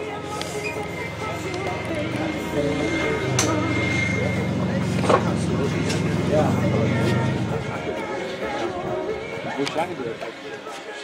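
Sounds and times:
model aircraft fans whining: 0.0 - 10.4
people talking: 1.2 - 10.3.

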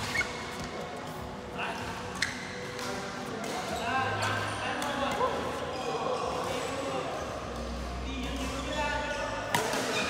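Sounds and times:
shoes squeaking on court: 0.0 - 1.2, 2.0 - 10.0
racket hitting shuttlecock: 9.5 - 10.0.

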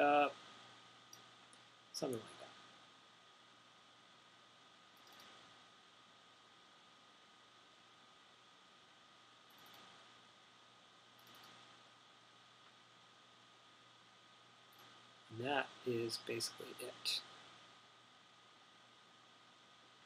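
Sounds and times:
faint room hiss: 0.0 - 20.0
computer mouse clicks: 5.0 - 5.5, 9.5 - 10.0, 11.2 - 11.8.

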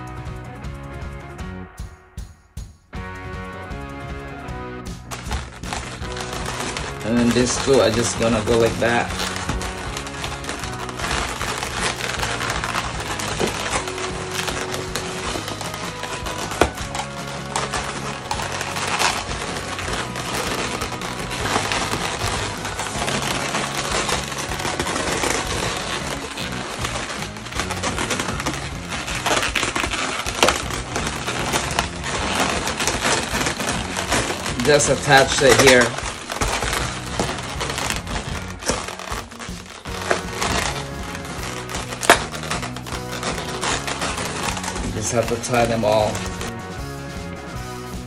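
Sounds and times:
background music: 0.0 - 48.0
balloons rubbing and squeaking: 4.9 - 48.0.

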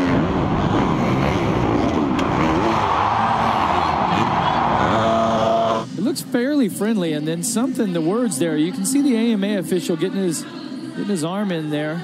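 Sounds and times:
dirt bike engine revving: 0.0 - 6.0
steady rush of noise: 0.0 - 11.2.

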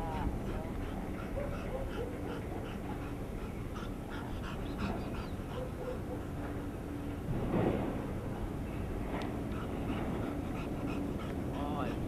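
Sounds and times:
dog panting: 0.0 - 6.9, 9.4 - 12.0.

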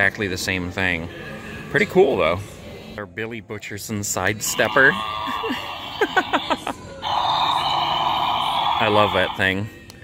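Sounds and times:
tinny toy speaker sound: 4.4 - 9.6
person laughing: 5.2 - 6.8.

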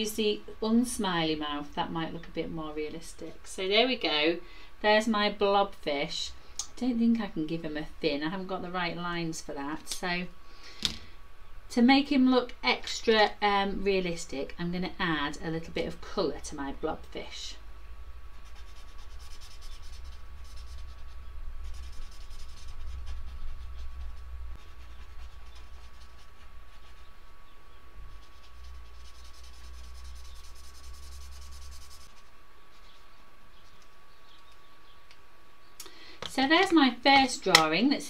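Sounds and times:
pencil scratching on paper: 18.4 - 27.1, 28.1 - 33.0.

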